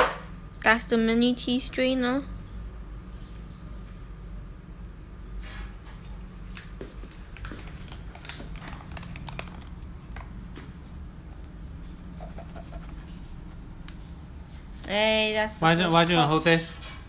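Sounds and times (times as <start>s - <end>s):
low steady hum: 0.0s - 17.0s
foil crinkling: 7.1s - 10.4s.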